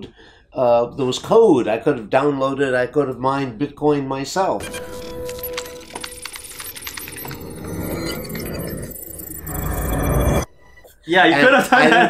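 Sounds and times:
high-pitched electronic chirping: 4.6 - 11.0.

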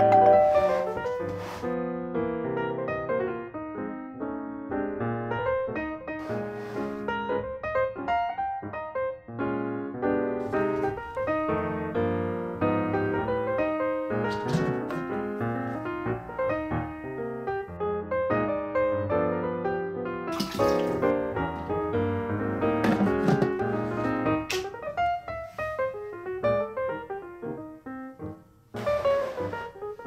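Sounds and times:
piano music: 0.0 - 30.0
water poured from plastic bottle: 20.3 - 21.6.

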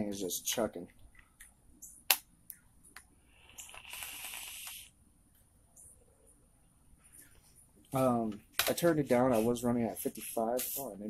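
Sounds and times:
vape coil hissing and crackling: 3.4 - 4.9.

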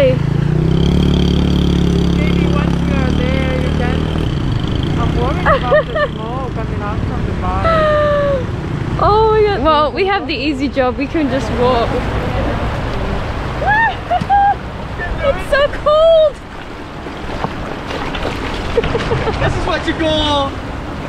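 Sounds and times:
small motorbike engine: 0.0 - 9.4
voices calling out: 0.0 - 21.0
water splashing: 0.4 - 21.0.

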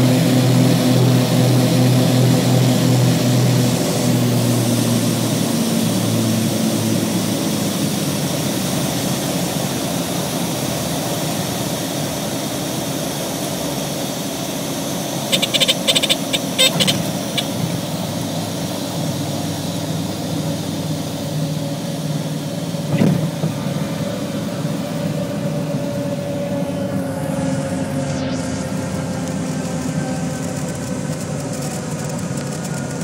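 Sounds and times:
propeller aircraft engines droning: 0.0 - 33.0.

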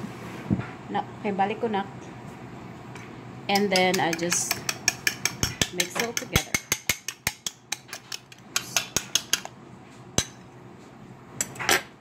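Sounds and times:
utensil clinking against bowl: 3.5 - 9.5.

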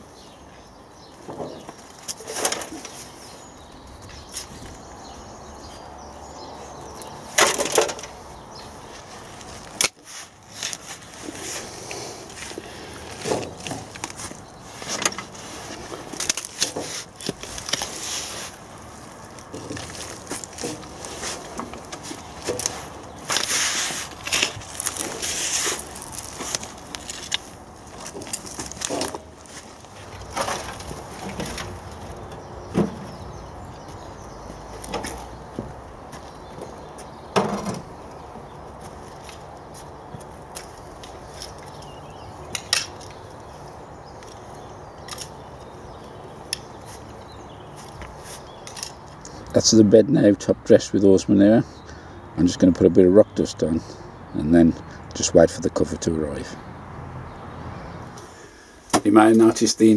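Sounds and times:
hand tool digging manure: 9.4 - 31.6.

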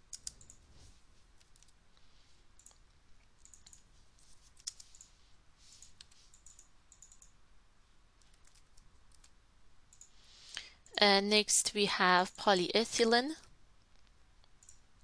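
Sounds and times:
keyboard typing: 0.0 - 0.7, 1.4 - 1.8, 2.6 - 5.1, 5.8 - 7.4, 8.2 - 10.2
mouse clicks: 5.8 - 7.4.

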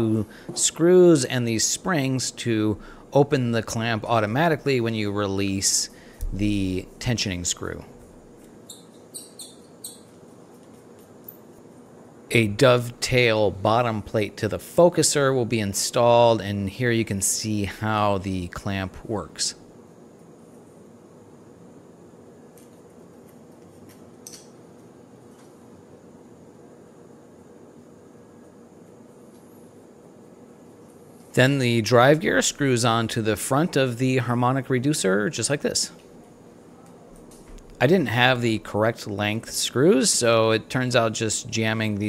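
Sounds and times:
low room hiss: 0.0 - 42.0
small parts clicking and tapping: 22.5 - 25.6.

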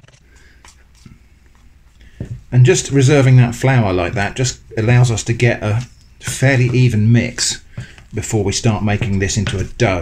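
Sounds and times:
spoon scraping batter in bowl: 0.0 - 10.0.

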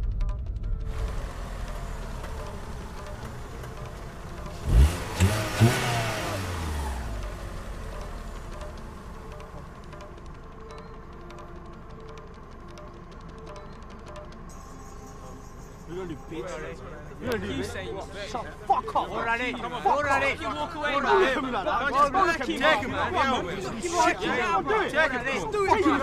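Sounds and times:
low background music: 0.0 - 26.0.

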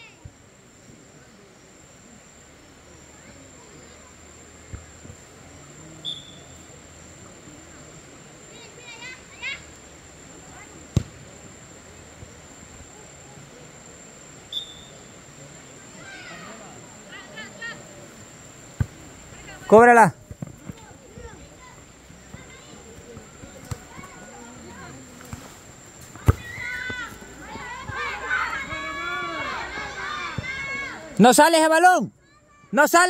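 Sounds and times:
distant shouts: 14.5 - 18.0, 26.2 - 33.0.

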